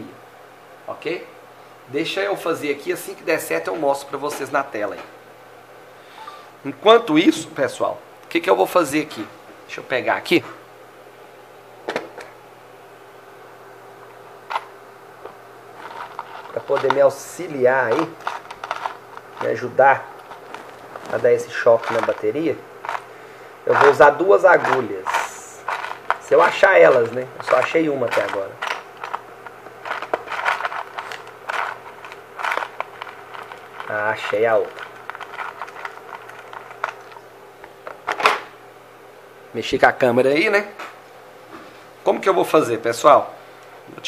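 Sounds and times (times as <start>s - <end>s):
low electrical hum: 0.0s - 44.0s
tools scraping and rustling: 15.7s - 23.1s, 23.7s - 38.5s
small objects clattering: 15.8s - 23.1s, 24.6s - 38.4s.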